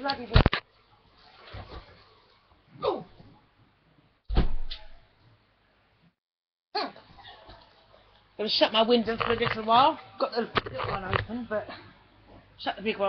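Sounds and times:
short loud thump: 4.3 - 5.0
person speaking: 8.4 - 11.8.

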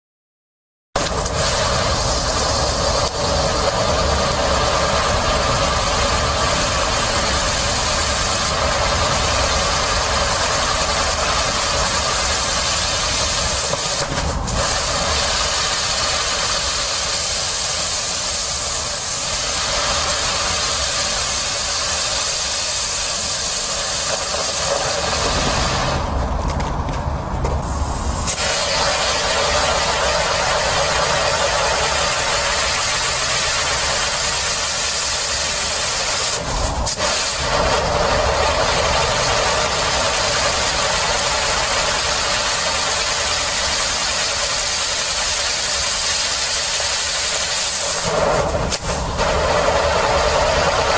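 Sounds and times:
firework hissing sparks: 1.0 - 26.4, 27.6 - 50.9.

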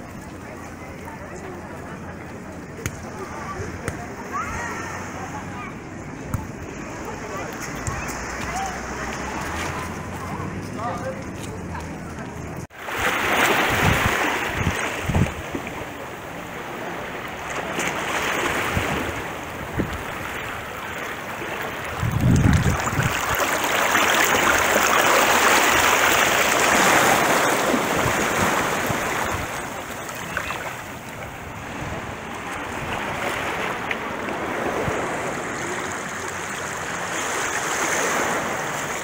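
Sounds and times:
sea waves washing over rocks: 12.7 - 39.0.

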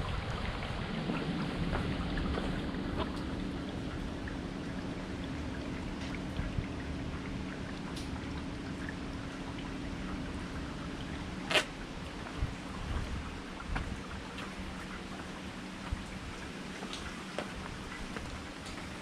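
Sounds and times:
rainwater dripping: 0.0 - 19.0
steady low hum: 0.0 - 19.0.

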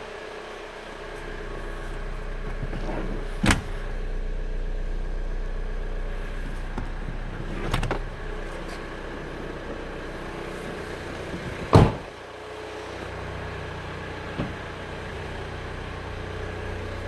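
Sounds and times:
steady low hum: 0.0 - 17.0
car door shutting: 1.1 - 4.0, 6.2 - 9.8, 10.5 - 12.2, 14.3 - 14.8.

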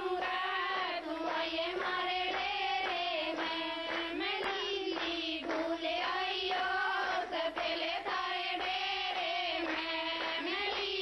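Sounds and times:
hand claps: 0.0 - 11.0
women singing folk song: 0.0 - 11.0.

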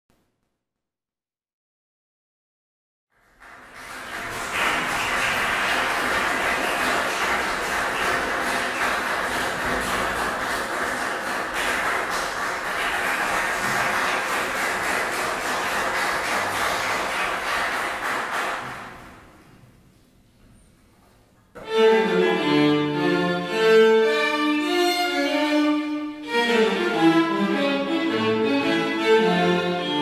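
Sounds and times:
audience applauding: 3.2 - 19.3.

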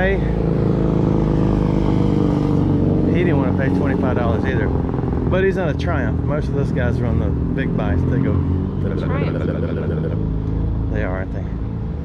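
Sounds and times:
vehicle engine rumbling: 0.0 - 12.0
person speaking: 8.8 - 10.2.

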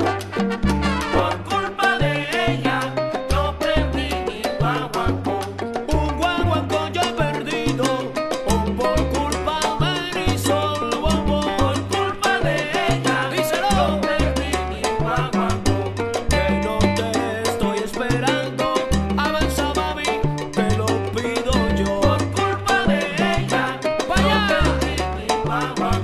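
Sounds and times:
bass line: 0.0 - 26.0
salsa music: 0.0 - 26.0.

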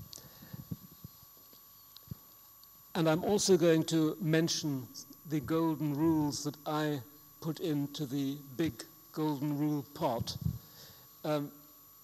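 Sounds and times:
microphone handling bumps: 0.0 - 1.2, 10.1 - 10.7.

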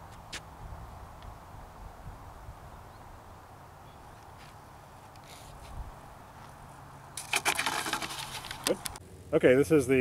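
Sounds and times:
rapid clicking and rustling: 7.2 - 9.0.

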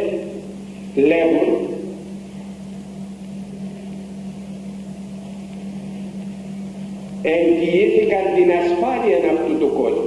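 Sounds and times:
person speaking: 0.0 - 2.1, 7.2 - 10.0
faint hiss: 0.0 - 10.0
steady low hum: 0.0 - 10.0.

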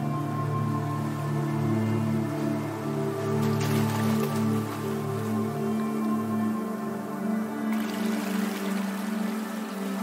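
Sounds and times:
ambient meditation music: 0.0 - 10.0
rushing water: 0.0 - 10.0.

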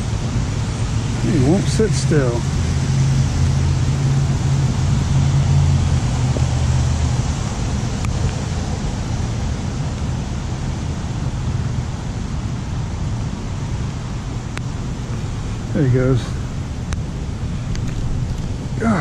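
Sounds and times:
low hum: 0.0 - 19.0
rushing outdoor noise: 0.0 - 19.0.

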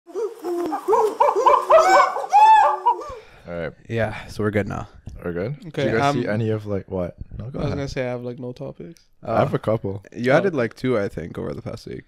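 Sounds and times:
monkey hooting: 0.1 - 3.2.

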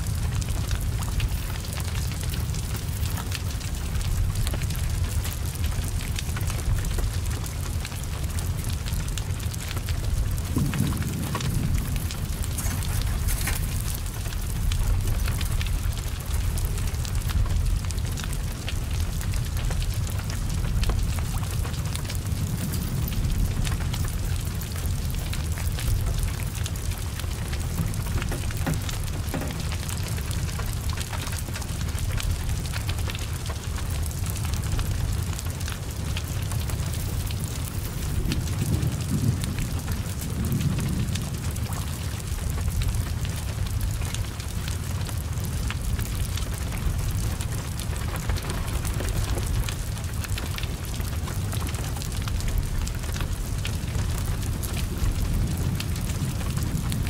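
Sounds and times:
heavy rain falling: 0.0 - 57.0
large fire rumbling: 0.0 - 57.0.

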